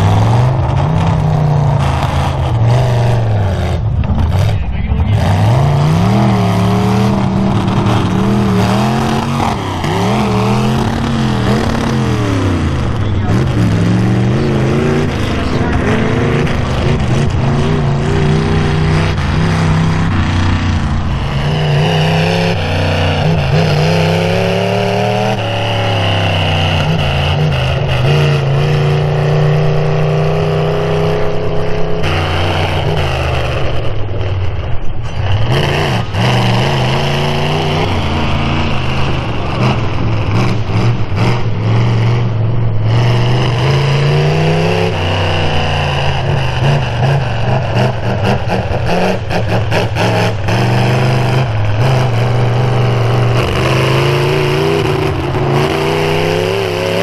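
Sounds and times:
truck engines revving: 0.0s - 57.0s.

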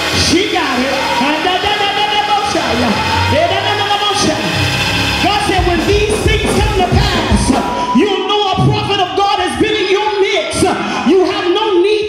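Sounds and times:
church band playing bass: 0.0s - 9.7s.

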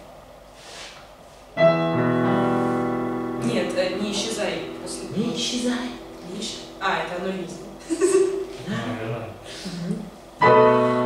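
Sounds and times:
digital piano chord: 1.6s - 11.0s.

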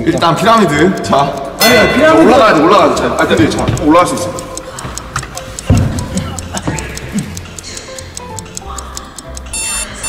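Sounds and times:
fast even ticking: 0.0s - 10.0s
light background music: 0.0s - 10.0s.

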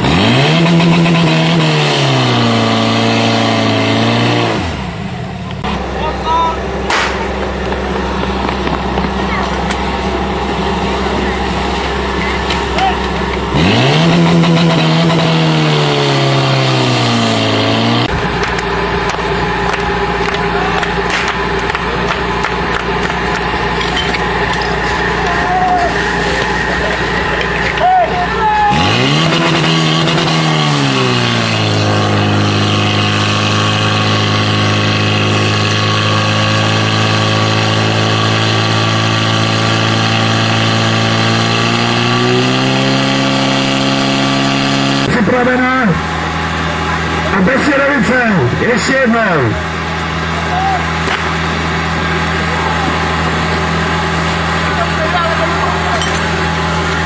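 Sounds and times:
fire pump engine revving: 0.0s - 57.0s.

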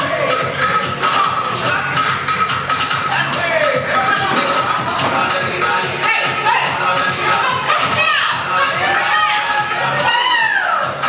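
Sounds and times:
crowd cheering and shouting: 3.1s - 11.0s
high whoops: 9.4s - 11.0s.

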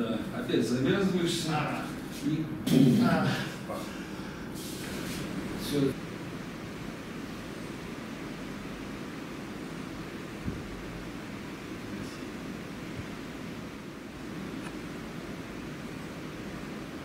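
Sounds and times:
room tone hiss: 0.0s - 17.0s.

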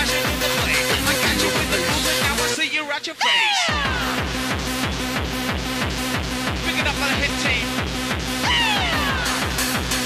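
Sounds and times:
fast rave dance music: 0.0s - 10.0s.

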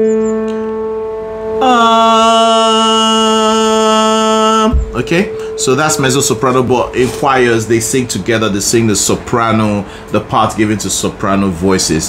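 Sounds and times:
keyboard note ringing: 0.0s - 10.0s
man singing low note: 1.6s - 9.4s.

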